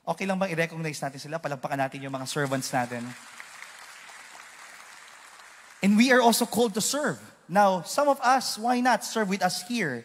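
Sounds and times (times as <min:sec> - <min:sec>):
audience applauding: 0:02.3 - 0:06.2.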